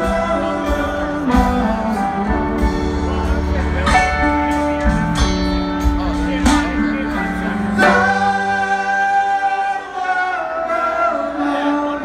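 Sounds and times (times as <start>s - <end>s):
live band music over pa: 0.0s - 12.0s.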